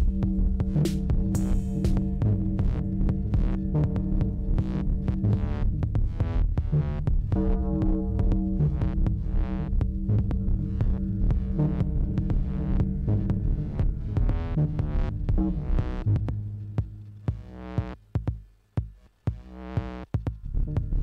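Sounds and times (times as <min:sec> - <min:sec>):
pulsing synth bass line: 0:00.0 - 0:18.0, 0:19.3 - 0:21.0.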